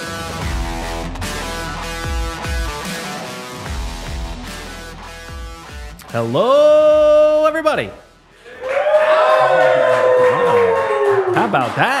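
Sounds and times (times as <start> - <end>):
man talking: 6.0 - 8.0, 11.4 - 12.0
long falling whoop: 8.5 - 11.4.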